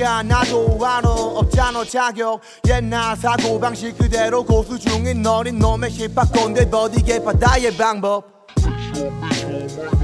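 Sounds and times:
rapping over a beat: 0:00.0 - 0:10.0
deep falling kick drums: 0:02.7 - 0:03.0.

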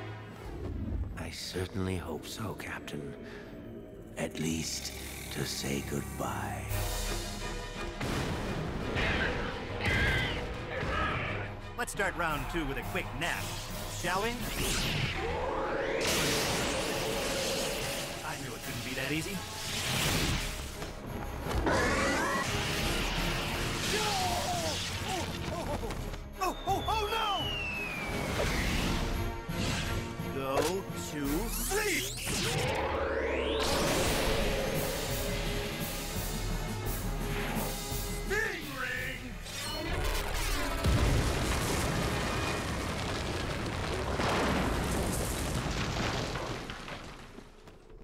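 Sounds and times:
monster roaring: 0:15.1 - 0:18.2
stone shattering crash: 0:40.8 - 0:47.8.

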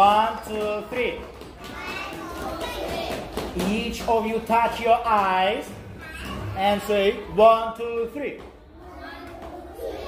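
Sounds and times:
children chattering and calling out: 0:00.1 - 0:10.0.

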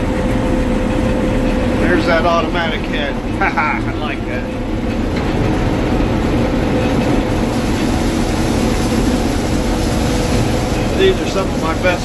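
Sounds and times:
combine harvester engine rumble: 0:00.0 - 0:12.0.

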